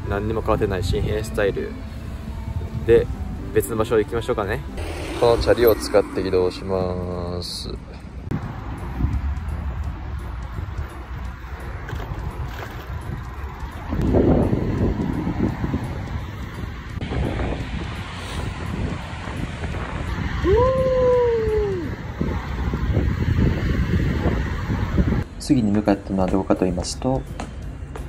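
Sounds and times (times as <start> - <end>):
wind buffeting microphone: 0.0 - 25.3
low rumble: 4.5 - 9.9
rising and falling tone: 4.6 - 7.6.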